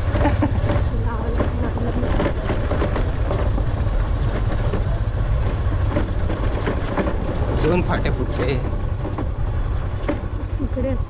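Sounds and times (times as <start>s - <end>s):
knocks from bumps: 0.0s - 10.8s
motorcycle engine running: 0.0s - 11.0s
wind rumble on microphone: 0.0s - 11.0s.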